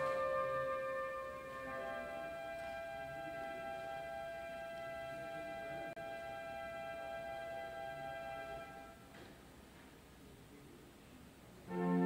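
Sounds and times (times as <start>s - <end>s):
church organ sustained chord: 0.0s - 9.0s, 11.7s - 12.0s.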